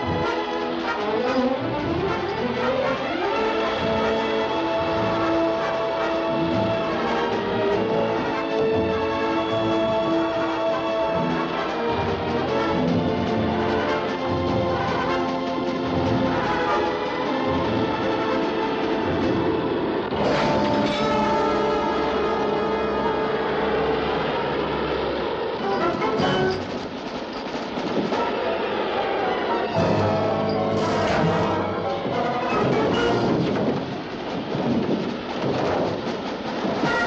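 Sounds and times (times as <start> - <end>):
low rumbling drone: 0.0 - 27.2
loud rush of noise: 0.0 - 37.0
storm buffeting a plane: 0.0 - 37.0
sustained orchestral music: 0.0 - 37.0.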